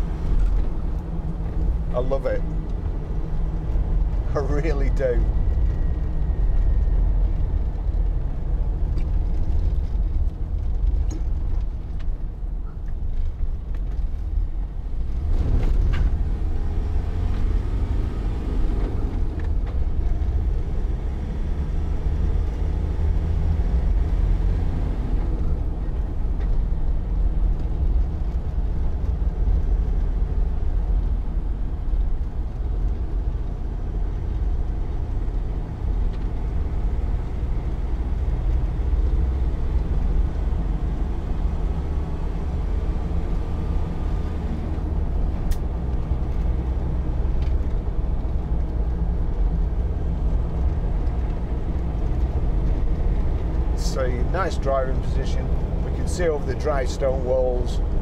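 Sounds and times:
road noise: 0.0s - 58.0s
diesel engine droning: 14.4s - 58.0s.

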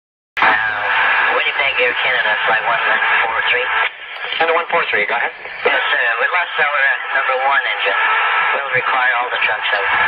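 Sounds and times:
radio static hiss: 0.4s - 10.0s
voice over radio: 0.4s - 10.0s.

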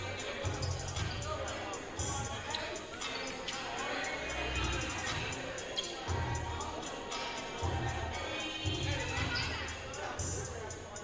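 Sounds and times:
echoing voices: 0.0s - 11.0s
music over sound system: 0.0s - 11.0s.

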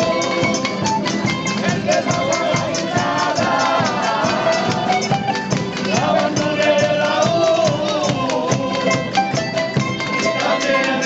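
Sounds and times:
lute playing melody: 0.0s - 7.5s, 8.3s - 11.0s
bass drum beat: 0.0s - 10.8s
guitars strummed: 0.0s - 11.0s.

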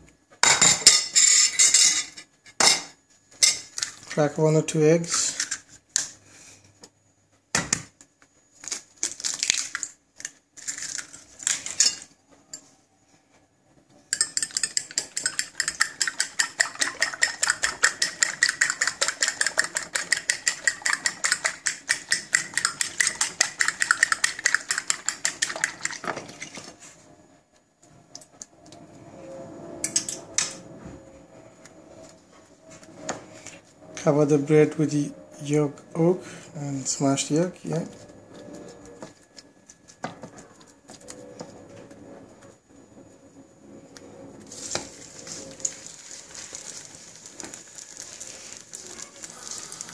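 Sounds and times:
egg cracking taps: 14.2s - 26.0s
fork beating eggs on a plate: 14.2s - 26.5s.

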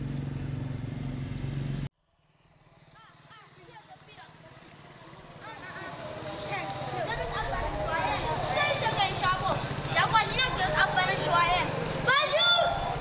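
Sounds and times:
vehicle engine humming: 0.0s - 13.0s
voices and chatter: 2.9s - 13.0s.

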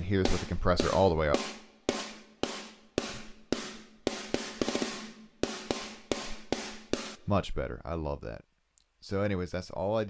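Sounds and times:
snare drum rock beat: 0.0s - 7.2s.

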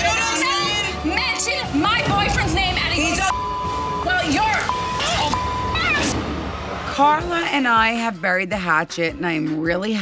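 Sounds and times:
background music: 0.0s - 10.0s
censor bleep: 3.3s - 6.1s.

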